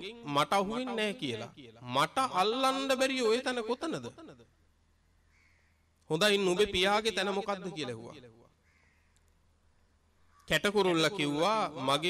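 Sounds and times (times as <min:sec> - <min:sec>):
man preaching into microphone: 0:00.0 - 0:04.3, 0:06.1 - 0:08.3, 0:10.5 - 0:12.0.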